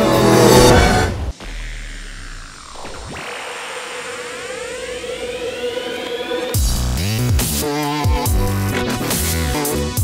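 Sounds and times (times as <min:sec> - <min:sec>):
rising riser whine: 0:00.0 - 0:07.4.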